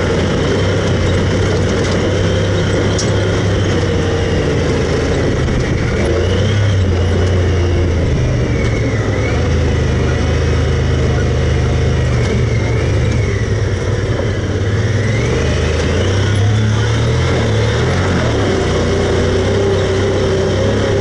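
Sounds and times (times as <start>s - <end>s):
vehicle engine droning: 0.0s - 21.0s.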